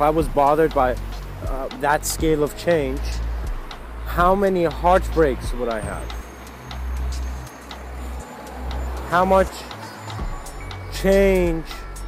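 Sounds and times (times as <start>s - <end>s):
regular ticking: 0.0s - 12.0s.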